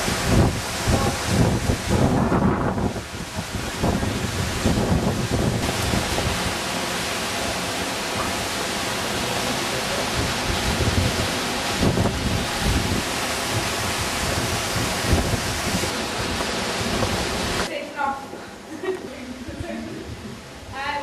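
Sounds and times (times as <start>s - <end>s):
wind buffeting microphone: 0.0s - 6.6s, 10.1s - 17.7s
water rushing at waterwheel: 0.0s - 21.0s.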